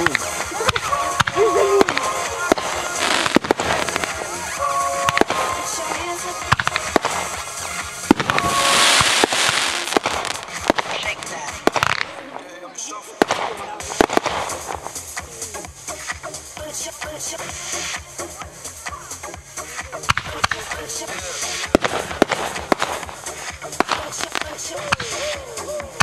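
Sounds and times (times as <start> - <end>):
firework crackling hiss: 0.0 - 12.4, 13.0 - 26.0
firework bangs: 0.0 - 15.4, 20.0 - 25.4.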